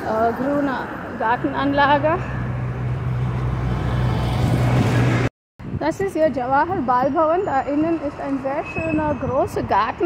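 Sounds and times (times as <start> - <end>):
vehicle passing: 0.0 - 5.3.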